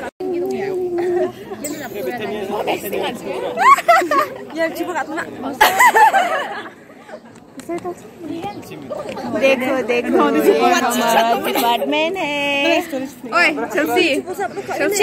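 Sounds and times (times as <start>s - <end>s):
young people chattering: 0.0s - 15.0s.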